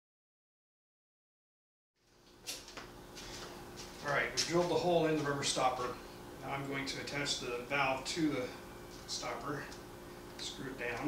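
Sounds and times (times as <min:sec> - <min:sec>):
steady low hum: 0:02.0 - 0:11.0.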